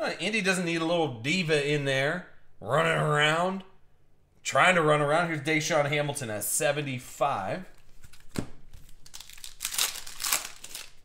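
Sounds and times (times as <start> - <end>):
foil wrapper crinkling: 7.8 - 11.0.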